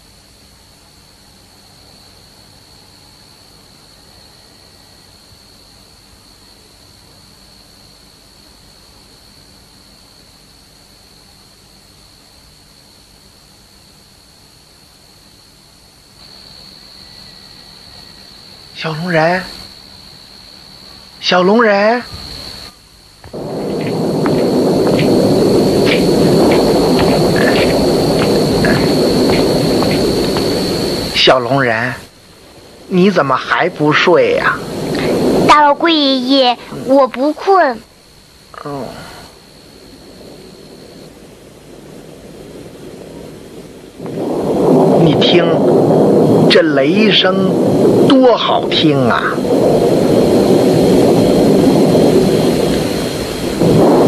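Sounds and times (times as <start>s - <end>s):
thunder rumbling: 18.3s - 54.0s
thunder crack: 21.5s - 37.7s, 38.6s - 54.0s.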